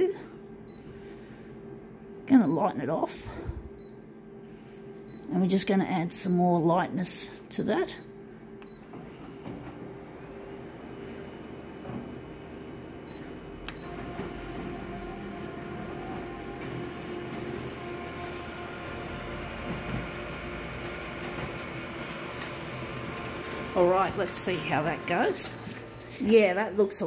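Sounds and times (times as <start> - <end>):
copier scanner running: 7.8 - 27.0
print engine whining: 9.9 - 27.0.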